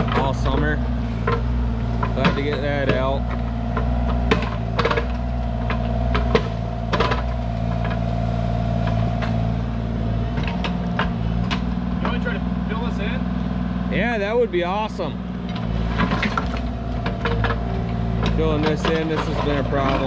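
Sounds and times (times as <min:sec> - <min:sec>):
bucket clanking on gravel: 0:00.0 - 0:08.0, 0:15.9 - 0:20.0
excavator diesel engine running: 0:00.0 - 0:20.0
hydraulic whine: 0:00.0 - 0:20.0.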